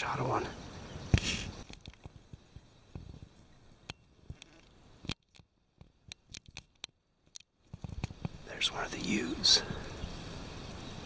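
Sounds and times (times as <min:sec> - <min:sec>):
faint clicks and crackles: 0:01.2 - 0:08.4.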